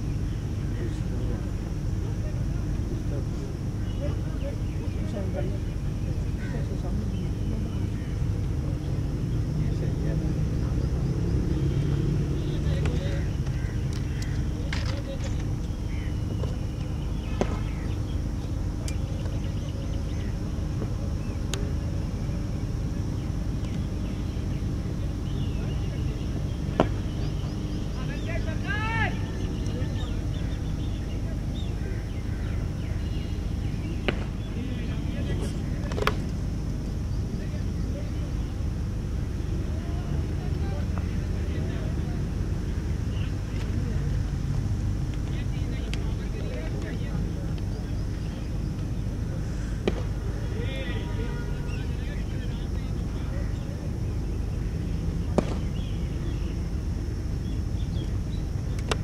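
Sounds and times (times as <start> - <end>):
faint distant voices: 0.0 - 59.0
steady low rumble: 0.0 - 59.0
cricket bat striking ball: 17.3 - 17.8, 26.7 - 27.1, 34.0 - 34.4, 49.8 - 50.2, 55.3 - 55.8.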